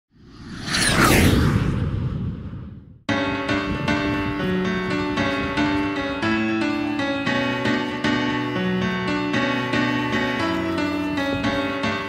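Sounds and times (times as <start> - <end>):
cinematic whoosh: 0.1 - 3.1
deep rumble: 0.2 - 3.1.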